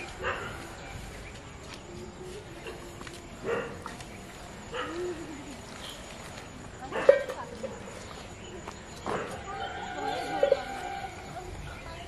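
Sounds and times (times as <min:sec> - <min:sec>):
faint outdoor background: 0:00.0 - 0:12.0
drawn-out animal call: 0:09.3 - 0:12.0.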